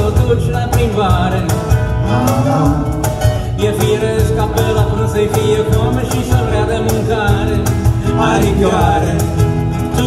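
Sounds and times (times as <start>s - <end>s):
acoustic and electric guitars: 0.0s - 10.0s
bass guitar line: 0.0s - 10.0s
percussion and cymbal hits: 0.0s - 10.0s.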